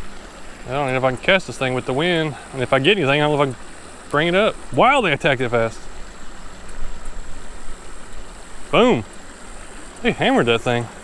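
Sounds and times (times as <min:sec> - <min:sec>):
creek running: 0:00.0 - 0:11.0.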